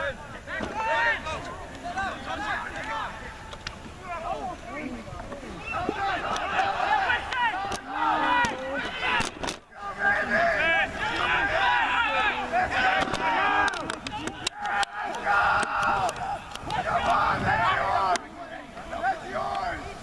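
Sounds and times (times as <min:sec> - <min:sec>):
people shouting and calling: 0:00.0 - 0:20.0.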